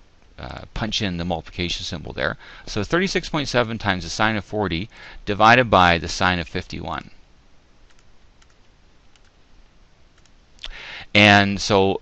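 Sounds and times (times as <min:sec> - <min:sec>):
breath-like noise burst: 0:04.9 - 0:05.2, 0:10.6 - 0:11.2
computer mouse clicks: 0:07.9 - 0:09.4, 0:10.2 - 0:10.7.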